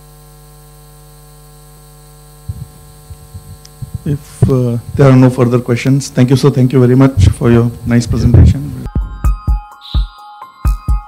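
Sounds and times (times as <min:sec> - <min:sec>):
electrical mains hum: 0:00.0 - 0:11.0.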